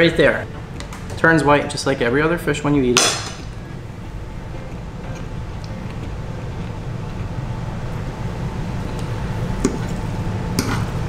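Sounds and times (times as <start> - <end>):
low rumble: 3.4 - 10.5
fork scraping plate: 10.6 - 11.0.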